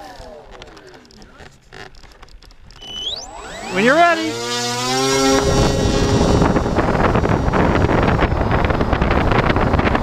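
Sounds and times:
electric motor whine spinning down: 2.8s - 10.0s
wind rumble on microphone: 4.8s - 10.0s.

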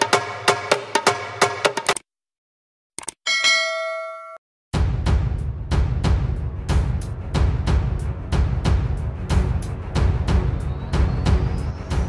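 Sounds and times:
notification bell chime: 3.3s - 4.4s.

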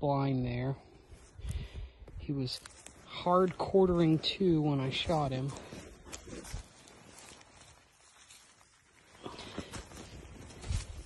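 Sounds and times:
footsteps crunching in snow: 1.0s - 11.0s.

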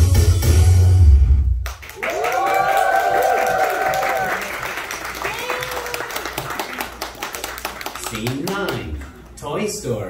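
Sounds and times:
audience clapping: 1.6s - 9.4s.

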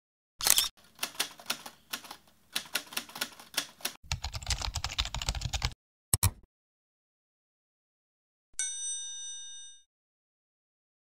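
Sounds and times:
typewriter keystrokes: 0.4s - 6.4s.

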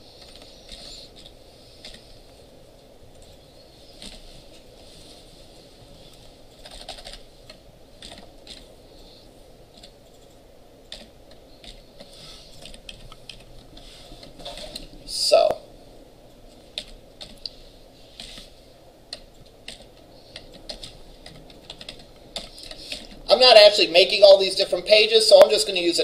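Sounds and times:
computer keyboard typing: 0.0s - 2.4s, 3.1s - 4.6s, 6.1s - 9.1s, 9.7s - 15.6s, 16.5s - 17.6s, 18.2s - 18.5s, 19.1s - 23.7s
faint background hum: 0.0s - 26.0s.

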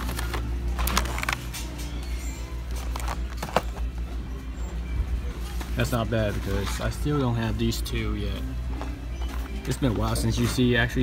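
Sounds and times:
packaging clicks and knocks: 0.0s - 2.0s, 2.6s - 4.0s.

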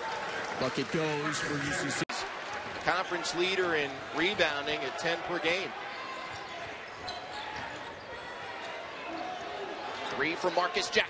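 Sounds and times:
crowd murmur in arena: 0.0s - 11.0s.

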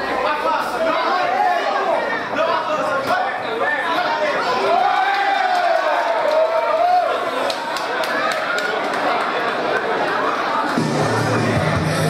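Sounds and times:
crowd shouting and chattering: 0.0s - 12.0s.

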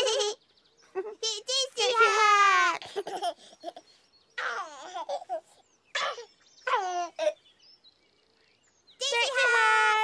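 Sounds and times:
high childlike voices babbling: 1.2s - 3.8s, 4.4s - 7.4s.

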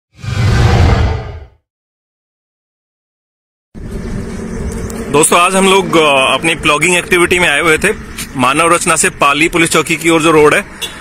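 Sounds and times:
low whoosh sound effect: 0.1s - 1.6s.

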